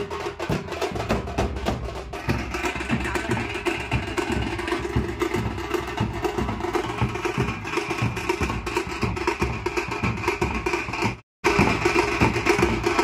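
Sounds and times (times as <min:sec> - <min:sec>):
barrel drums beaten with sticks: 0:00.0 - 0:13.0
fast tasha drum rhythm: 0:00.0 - 0:13.0.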